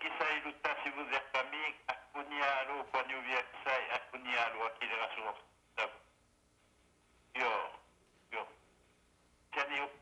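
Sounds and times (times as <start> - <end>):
speech over telephone line: 0.0 - 6.1, 7.3 - 8.7, 9.5 - 10.0.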